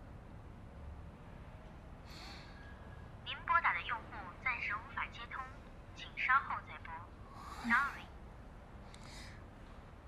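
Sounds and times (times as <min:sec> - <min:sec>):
voice over phone line: 0:03.3 - 0:07.1.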